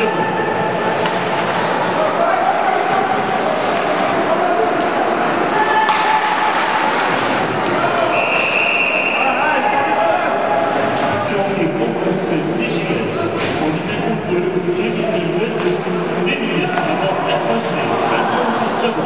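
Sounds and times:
spectators shouting: 0:00.0 - 0:11.3, 0:15.8 - 0:19.0
referee's whistle: 0:08.1 - 0:09.5.

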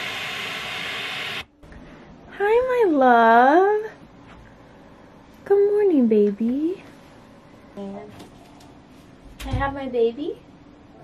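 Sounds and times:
white noise machine: 0:00.0 - 0:09.0.

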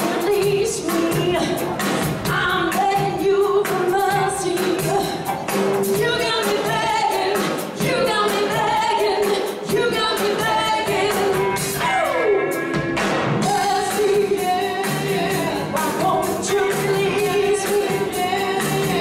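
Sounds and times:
lead vocal singing: 0:00.0 - 0:19.0
live band playing: 0:00.0 - 0:19.0.

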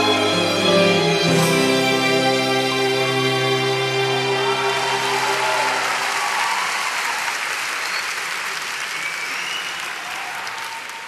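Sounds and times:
audience applauding: 0:03.4 - 0:11.0.

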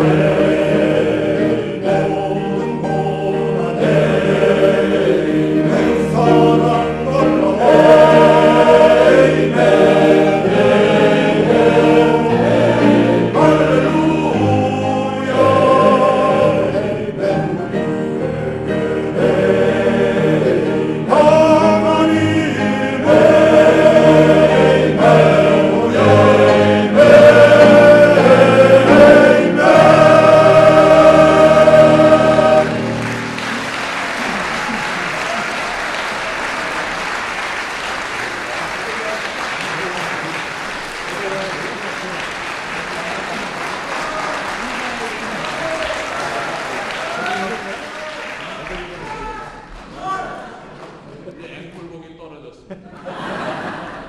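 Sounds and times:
male choir singing: 0:00.0 - 0:37.2
piano accompaniment: 0:00.0 - 0:49.0
audience applauding: 0:32.6 - 0:51.3.

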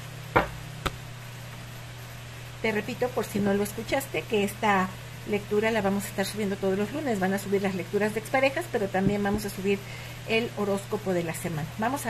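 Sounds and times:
cards knocking on a table: 0:00.4 - 0:01.0.

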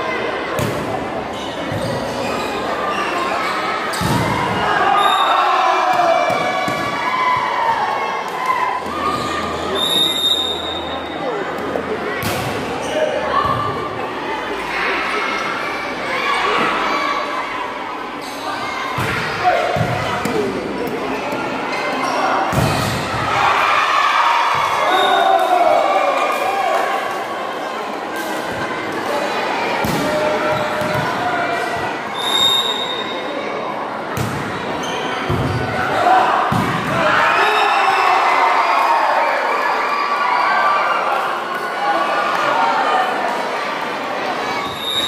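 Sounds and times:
crowd cheering: 0:02.9 - 0:11.4, 0:22.1 - 0:28.1, 0:34.8 - 0:45.0.

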